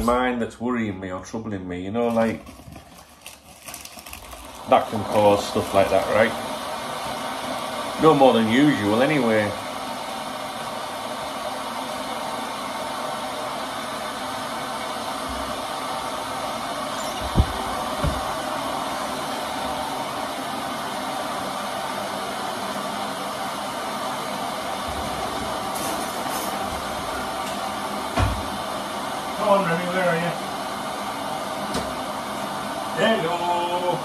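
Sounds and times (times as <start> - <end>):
appliance whooshing hiss: 4.3 - 34.0.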